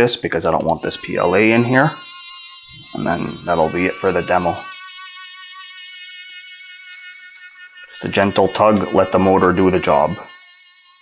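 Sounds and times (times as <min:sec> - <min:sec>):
small motor high-pitched whine: 0:00.6 - 0:11.0.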